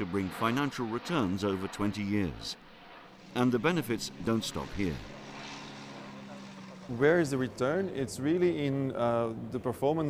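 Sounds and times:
propeller plane engines droning: 0.0 - 10.0.

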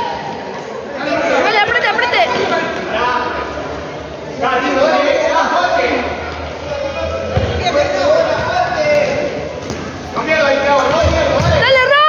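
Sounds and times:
hall background noise: 0.0 - 12.0
people chattering and calling out: 0.0 - 12.0.

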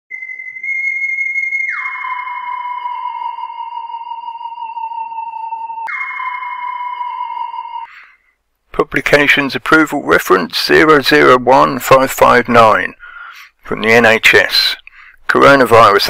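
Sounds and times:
high held electronic tone: 0.1 - 7.9
sliding electronic tone: 1.7 - 7.9.

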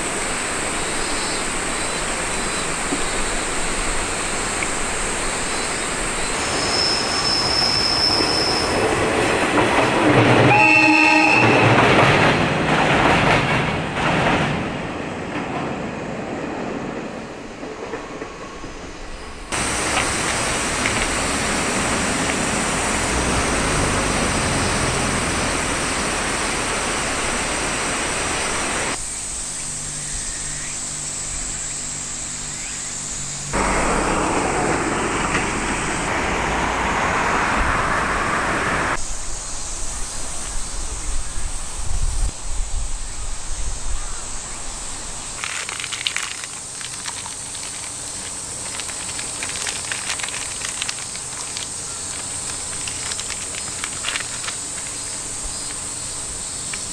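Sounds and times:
train rumbling over bridge: 0.0 - 56.9
train horn: 10.3 - 12.0.

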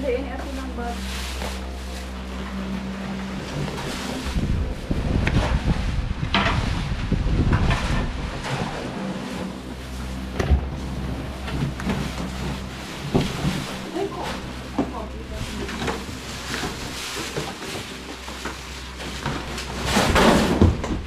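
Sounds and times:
plastic wrapping rustling: 0.0 - 6.0, 9.2 - 20.8
steady low hum: 0.0 - 21.0.

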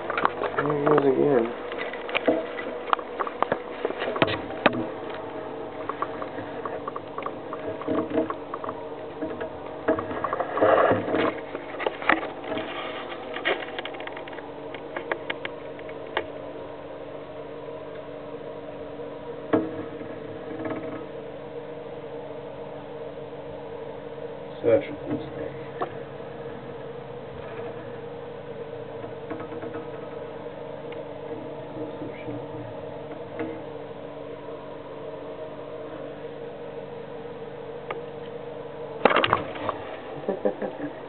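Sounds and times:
steady hum: 0.0 - 41.0.

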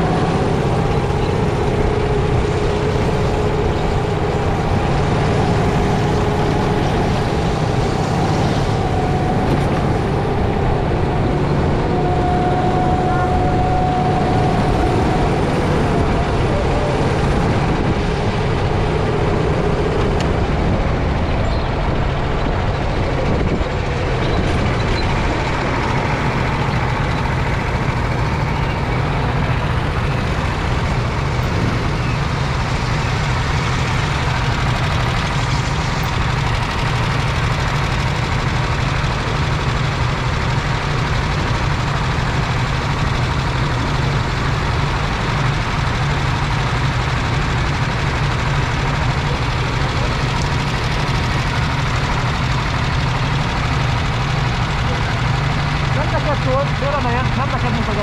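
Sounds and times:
go-kart engine running: 0.0 - 58.0
other kart engines nearby: 0.0 - 58.0.

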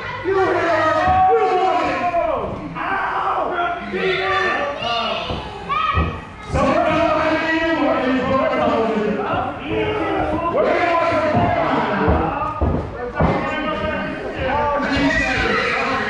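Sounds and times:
excited voices shouting: 0.0 - 7.6, 14.4 - 16.0.

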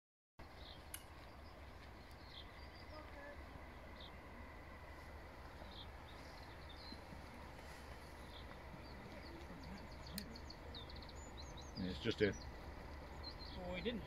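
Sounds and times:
birds chirping: 0.4 - 14.0
faint low rumble: 0.4 - 14.0.

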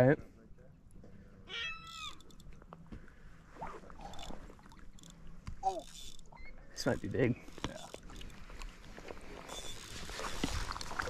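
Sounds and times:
faint scattered clicks: 2.1 - 2.9.

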